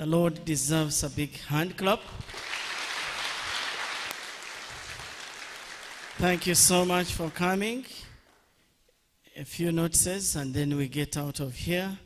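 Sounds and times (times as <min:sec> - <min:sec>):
congregation applauding: 0:02.2 - 0:08.0.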